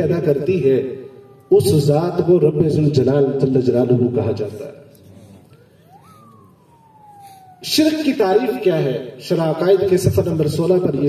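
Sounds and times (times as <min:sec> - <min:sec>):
quiet hall ambience: 0:00.0 - 0:11.0
siren-like wail: 0:00.0 - 0:11.0.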